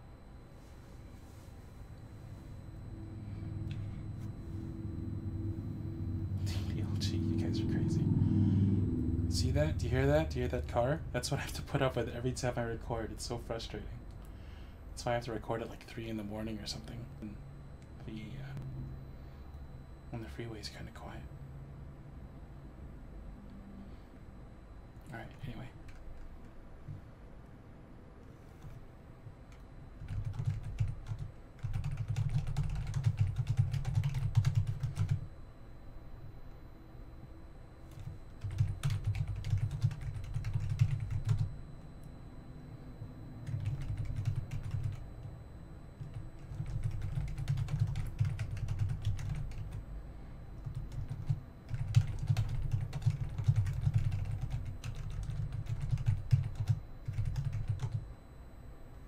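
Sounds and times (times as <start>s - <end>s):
typing on computer keyboard: 29.5s - 35.2s, 37.9s - 41.5s, 43.4s - 45.0s, 46.0s - 49.8s, 50.6s - 58.0s.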